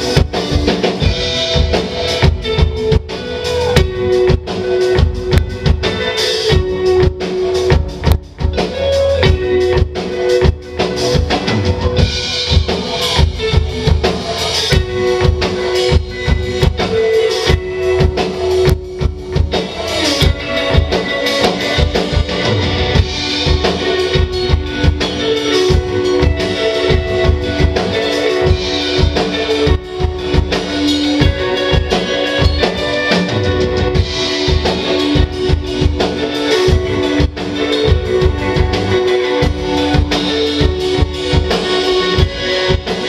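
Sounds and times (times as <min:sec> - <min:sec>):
drum kit beat: 0:00.0 - 0:43.0
electric bass: 0:00.0 - 0:43.0
electric guitars: 0:00.0 - 0:43.0.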